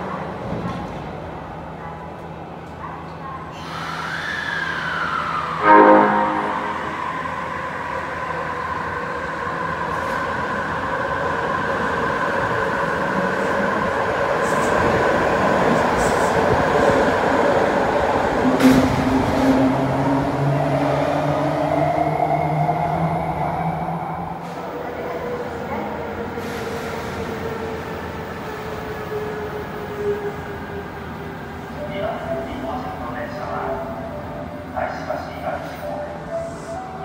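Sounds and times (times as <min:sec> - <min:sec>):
train horn toot: 0:05.6 - 0:07.5.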